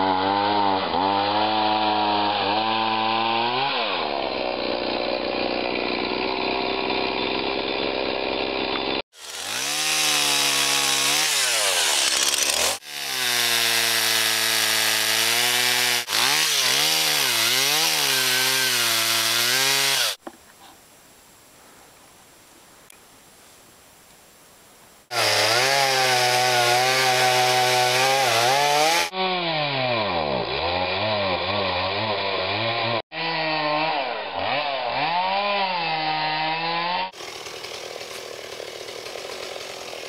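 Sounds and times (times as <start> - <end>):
chainsaw cutting wood: 0.0 - 20.3, 25.1 - 40.0.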